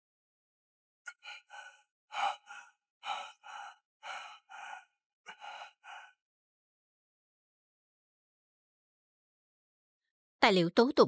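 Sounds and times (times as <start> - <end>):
man gasping and sighing: 1.1 - 6.2.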